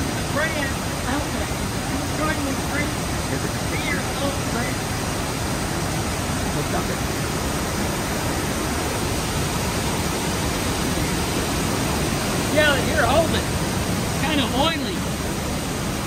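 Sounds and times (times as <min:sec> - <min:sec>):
voices talking: 0:00.0 - 0:07.3, 0:10.6 - 0:15.8.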